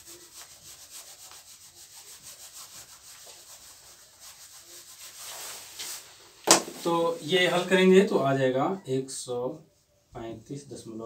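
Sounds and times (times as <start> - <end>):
eraser rubbing on whiteboard: 0.0 - 6.9.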